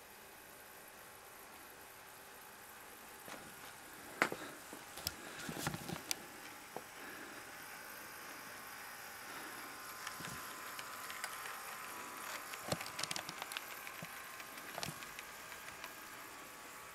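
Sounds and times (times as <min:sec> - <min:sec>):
model train motor whine: 0:05.4 - 0:16.9.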